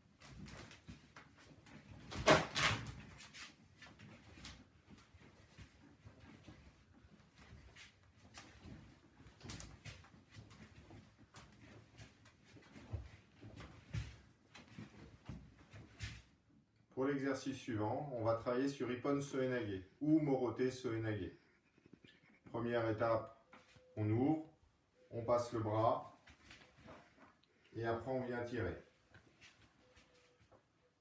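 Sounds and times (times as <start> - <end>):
bare feet on wooden floor: 3.2 - 16.3.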